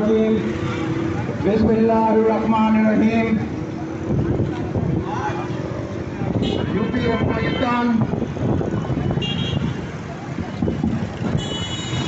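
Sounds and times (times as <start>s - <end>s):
crowd murmur: 0.0s - 7.4s, 8.0s - 12.0s
street traffic noise: 0.0s - 12.0s
vehicle horn tooting: 6.4s - 7.8s, 9.0s - 9.8s, 11.3s - 12.0s.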